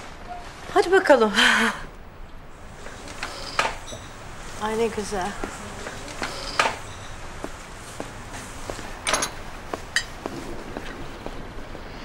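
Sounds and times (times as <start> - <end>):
footsteps on hard floor: 7.4 - 11.4.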